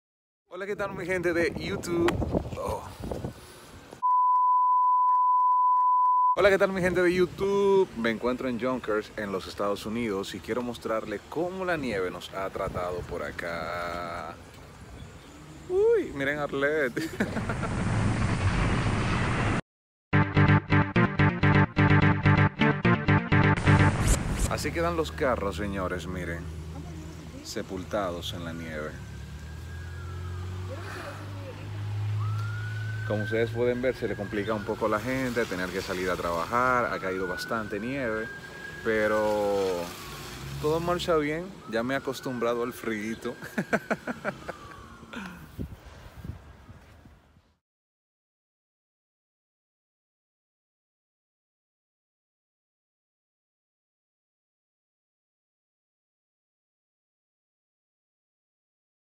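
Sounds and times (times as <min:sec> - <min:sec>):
steady test tone beep: 0:04.0 - 0:06.4
vehicle engine rumble: 0:24.2 - 0:36.5, 0:43.3 - 0:46.8.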